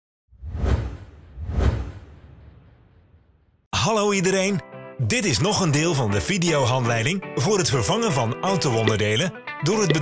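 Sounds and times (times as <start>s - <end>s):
whoosh with deep low rumble: 0.3s - 3.7s.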